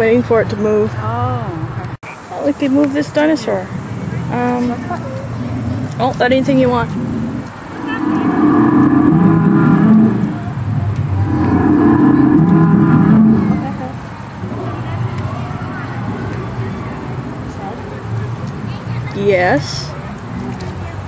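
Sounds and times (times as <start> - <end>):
recorded animal bellow from speaker: 4.3 - 17.9.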